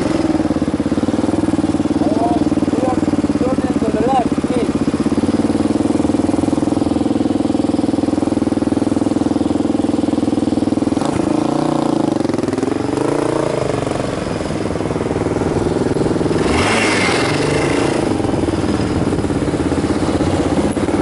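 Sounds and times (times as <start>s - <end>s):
motorcycle engine idling and revving: 0.0s - 21.0s
traffic: 0.0s - 21.0s.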